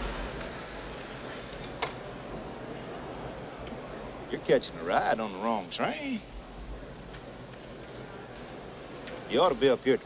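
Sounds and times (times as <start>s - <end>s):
mess hall background din: 0.0s - 10.0s.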